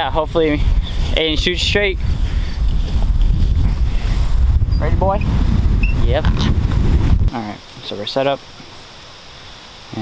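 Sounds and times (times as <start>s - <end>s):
wind buffeting microphone: 0.0s - 7.4s.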